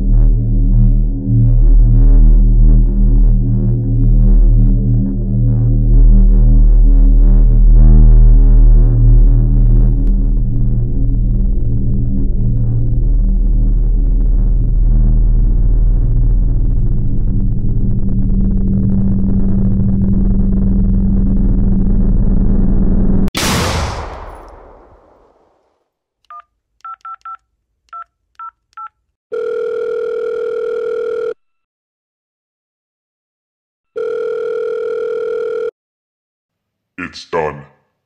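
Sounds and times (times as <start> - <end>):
low droning film score: 0.0 - 25.2
sharp crash: 23.4 - 25.6
keypad dialing beeps: 26.3 - 28.9
telephone ringback tone: 29.3 - 31.4, 34.0 - 35.7.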